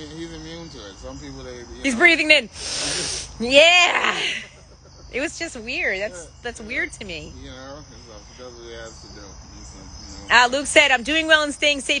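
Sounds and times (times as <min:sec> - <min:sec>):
crickets chirping: 0:00.0 - 0:12.0
faint voice: 0:02.6 - 0:06.5, 0:07.4 - 0:10.4.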